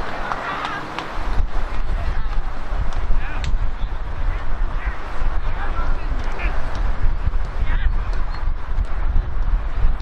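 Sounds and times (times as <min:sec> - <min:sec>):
people shouting: 0:00.0 - 0:01.0
crowd raised voices: 0:00.0 - 0:06.7
wind rumbling on microphone: 0:00.0 - 0:10.0.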